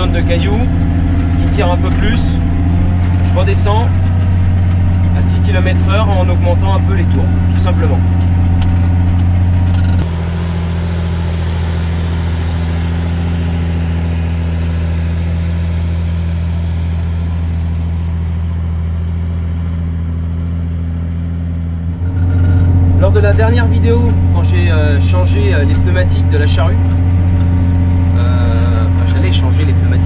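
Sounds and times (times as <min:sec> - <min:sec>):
tractor diesel engine under load: 0:00.0 - 0:30.0.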